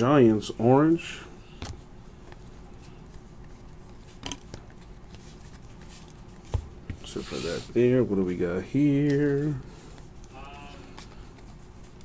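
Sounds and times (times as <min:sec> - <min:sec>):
steady low hum: 0:00.0 - 0:12.0
cards sliding and ticking: 0:01.5 - 0:12.0.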